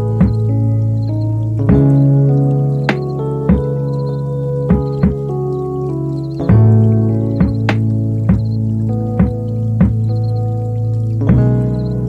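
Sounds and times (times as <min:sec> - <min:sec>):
held low electronic notes: 0:00.0 - 0:12.0.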